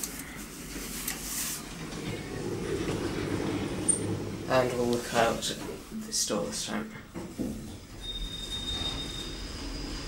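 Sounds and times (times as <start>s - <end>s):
lift car running rumble: 1.7s - 5.7s.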